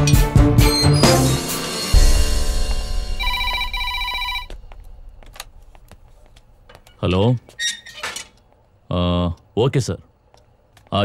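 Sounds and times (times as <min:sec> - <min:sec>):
film music: 0:00.0 - 0:07.1
desk telephone ringing: 0:03.2 - 0:04.5.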